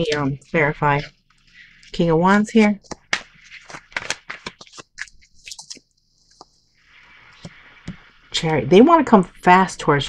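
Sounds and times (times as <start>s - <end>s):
cards being shuffled: 0.0s - 6.6s, 7.2s - 8.1s.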